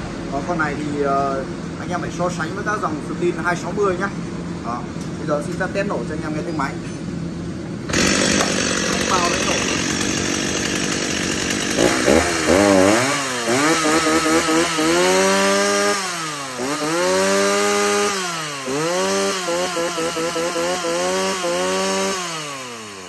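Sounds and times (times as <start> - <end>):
chainsaw revving: 7.8 - 23.0.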